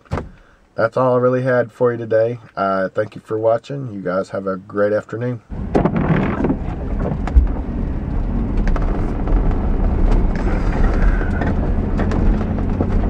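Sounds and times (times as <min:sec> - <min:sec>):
loud thump: 0:05.5 - 0:07.7
road and engine rumble in car: 0:05.5 - 0:13.0.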